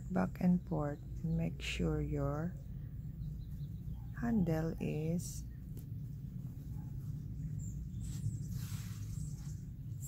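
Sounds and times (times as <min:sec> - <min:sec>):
low background hum: 0:00.0 - 0:10.0
yarn rustling through fabric: 0:03.5 - 0:10.0.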